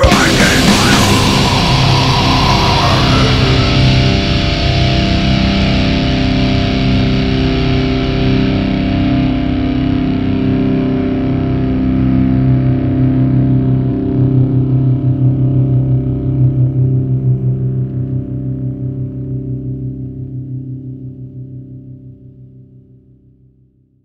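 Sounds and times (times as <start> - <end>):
distorted electric guitar ringing: 0.0 - 13.0.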